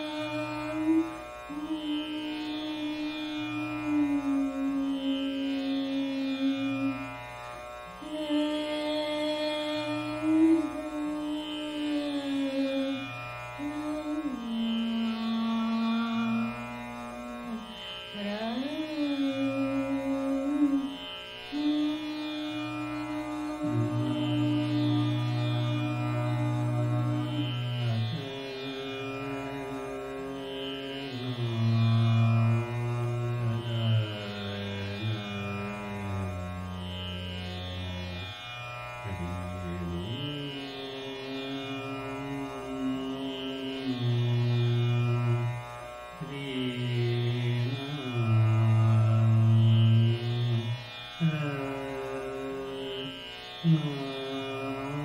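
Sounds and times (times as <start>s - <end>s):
woman singing long notes: 0.0s - 7.0s, 8.0s - 13.0s, 13.6s - 16.6s, 17.3s - 30.2s, 53.6s - 55.0s
tanpura drone: 0.0s - 55.0s.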